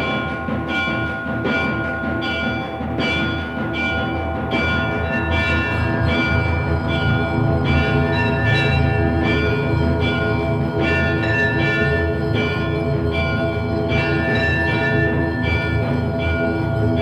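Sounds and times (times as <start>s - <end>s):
bells ringing: 0.0s - 17.0s
low drone: 3.7s - 17.0s.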